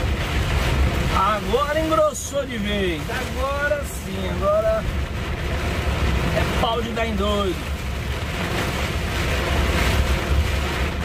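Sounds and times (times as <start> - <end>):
heavy rain on windscreen and roof: 0.0 - 11.0
tyres on wet road: 0.0 - 11.0.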